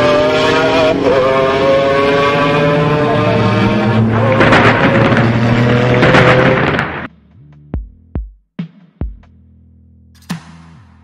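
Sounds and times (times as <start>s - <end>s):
thunder-like rumble: 4.1s - 7.1s
music: 7.1s - 11.0s.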